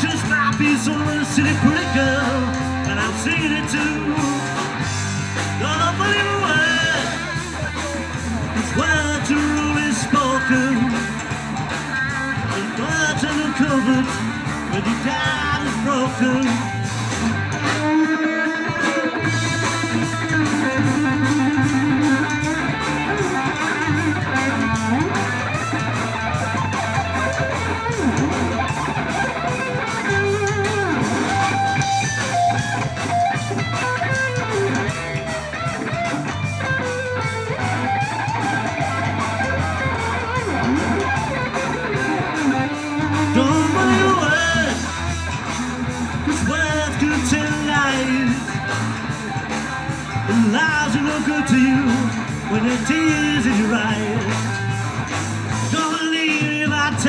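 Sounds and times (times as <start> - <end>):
bass guitar: 0.0 - 57.0
drums: 0.0 - 57.0
electric guitar with bent notes: 0.0 - 57.0.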